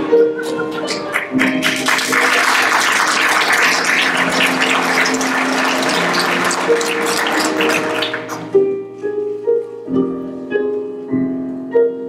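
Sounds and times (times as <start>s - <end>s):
audience clapping: 0.4s - 8.5s.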